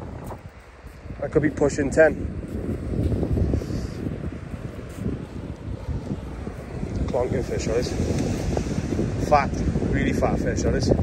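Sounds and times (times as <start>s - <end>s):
wind buffeting the microphone: 0.0s - 11.0s.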